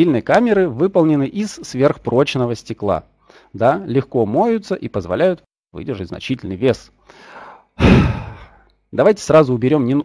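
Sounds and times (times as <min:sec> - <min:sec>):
man breathing in: 0:03.2 - 0:03.5, 0:07.0 - 0:08.7
man sighing: 0:07.8 - 0:08.7.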